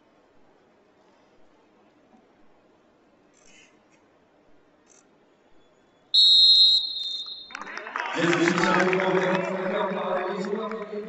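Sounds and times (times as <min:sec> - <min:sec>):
referee's whistle blast: 0:06.2 - 0:07.7
voices: 0:07.5 - 0:11.0.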